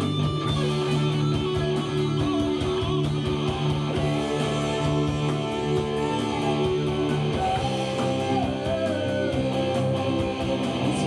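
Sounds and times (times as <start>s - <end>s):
electric guitar playing chords: 0.0s - 11.0s
live band playing: 0.0s - 11.0s.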